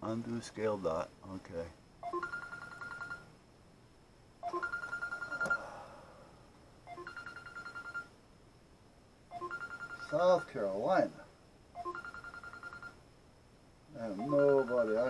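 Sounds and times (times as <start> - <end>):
mobile phone ringing: 2.0 - 3.3, 4.4 - 5.8, 6.9 - 8.2, 9.3 - 10.7, 11.7 - 13.0, 14.0 - 15.0.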